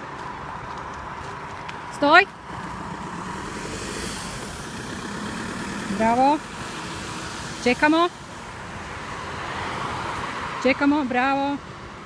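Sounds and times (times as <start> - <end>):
car driving past: 2.3 - 10.7.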